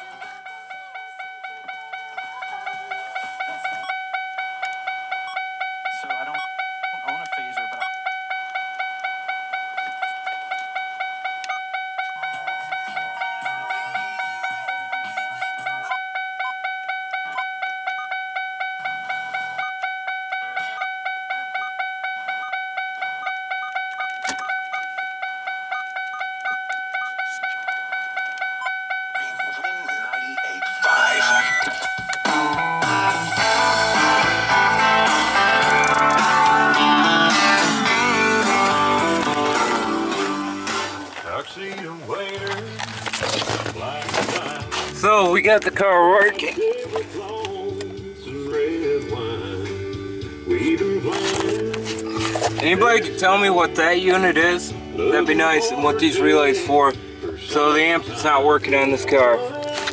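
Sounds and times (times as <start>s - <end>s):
electronic chime beeping: 0.0s - 41.1s
faint radio sound: 12.0s - 16.0s.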